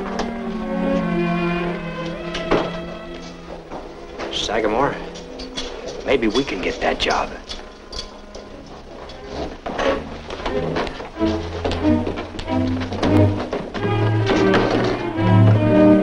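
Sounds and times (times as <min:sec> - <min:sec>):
orchestral film music: 0:00.0 - 0:16.0
thunks: 0:09.4 - 0:16.0.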